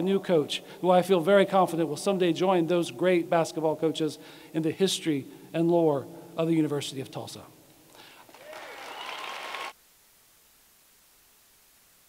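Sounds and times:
faint steady hiss: 0.0 - 12.0
audience applause: 8.2 - 9.8.

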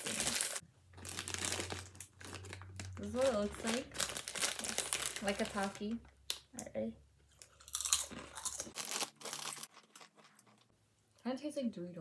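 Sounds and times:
corn chips crunching: 0.0 - 5.8, 7.4 - 10.7.

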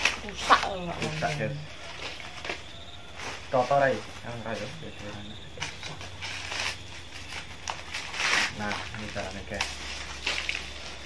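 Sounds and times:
corn husks rustling and tearing: 0.0 - 11.0.

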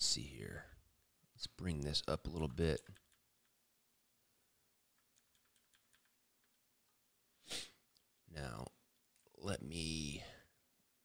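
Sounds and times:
faint computer keyboard clicks: 2.8 - 3.6, 5.0 - 6.6.

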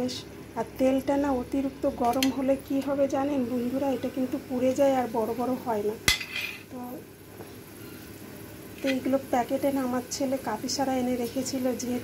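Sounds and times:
oil sizzling: 0.0 - 12.0.

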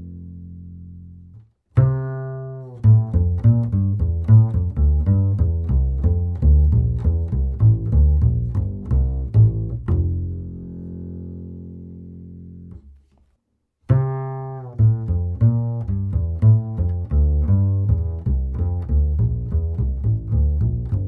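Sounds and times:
double bass plucked pizzicato: 0.0 - 21.0.

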